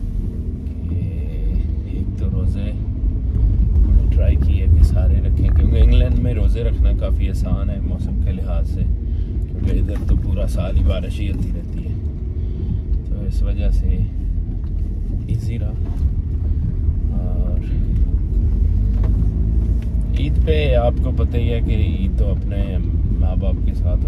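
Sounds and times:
car interior rumble: 0.0 - 24.0
man talking: 0.8 - 2.9, 3.8 - 12.0, 13.0 - 14.2, 15.2 - 16.0, 17.0 - 17.9, 20.1 - 24.0.

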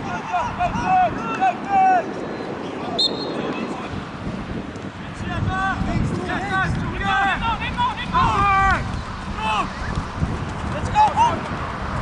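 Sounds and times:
wind rumble on microphone: 0.0 - 12.0
people shouting: 6.4 - 9.8.

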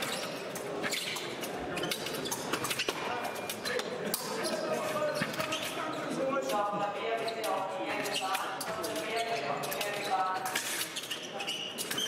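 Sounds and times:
voices talking in a hall: 0.0 - 12.0.

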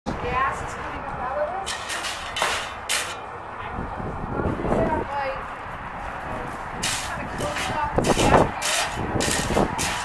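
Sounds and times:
indistinct voices talking: 0.1 - 10.0.

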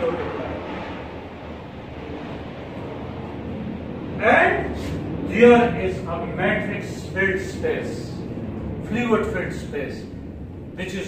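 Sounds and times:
low hum: 0.0 - 11.0
even hiss: 4.2 - 8.2.

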